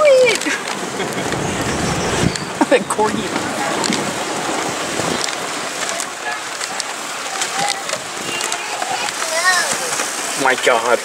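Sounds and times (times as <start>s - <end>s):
wheels rattling over wooden planks: 0.0s - 11.0s.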